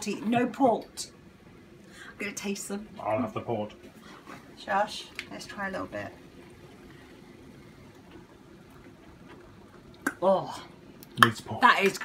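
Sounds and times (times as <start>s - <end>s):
chutney simmering with soft pops: 5.1s - 12.0s.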